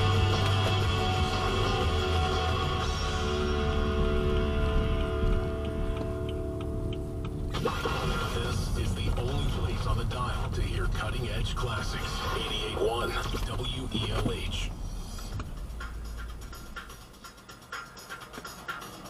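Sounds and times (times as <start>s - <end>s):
song on car radio: 0.0s - 19.0s
radio announcer speaking: 7.5s - 15.0s.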